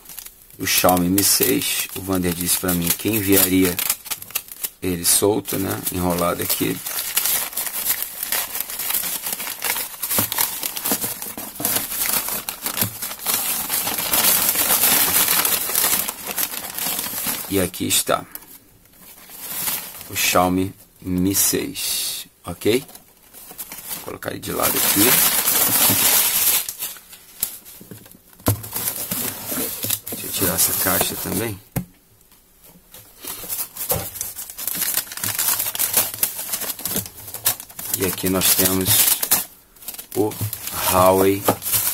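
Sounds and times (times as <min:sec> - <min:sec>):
paper crinkling and rustling: 0:00.0 - 0:20.4, 0:22.6 - 0:31.6, 0:32.6 - 0:41.9.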